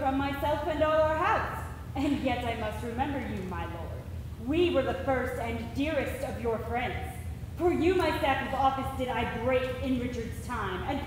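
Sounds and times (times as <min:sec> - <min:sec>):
woman speaking dialogue: 0:00.0 - 0:11.0.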